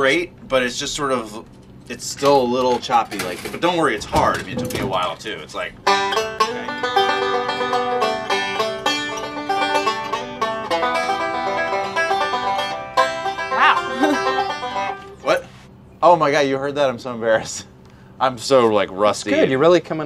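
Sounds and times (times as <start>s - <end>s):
banjo fast picking: 4.3s - 15.1s.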